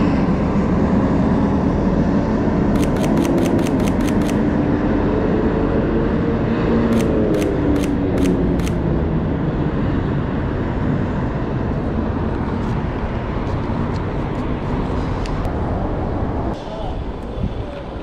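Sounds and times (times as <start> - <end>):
traffic rumble: 0.0 - 18.0
camera shutter clicks: 2.8 - 4.5, 7.0 - 8.9.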